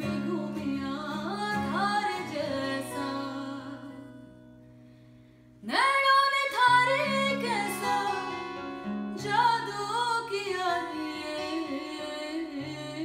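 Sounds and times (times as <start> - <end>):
woman singing: 0.0 - 4.4, 5.6 - 13.0
acoustic guitar chords: 0.0 - 13.0.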